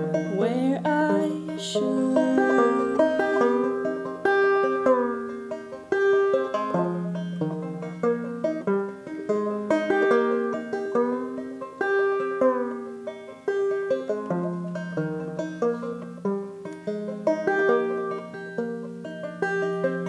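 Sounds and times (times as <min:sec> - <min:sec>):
acoustic string band playing: 0:00.0 - 0:20.0.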